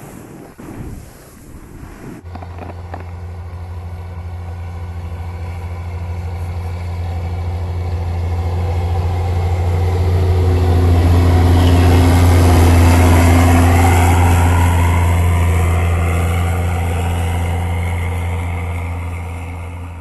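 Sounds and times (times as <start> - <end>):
snow groomer engine droning: 0.0 - 20.0.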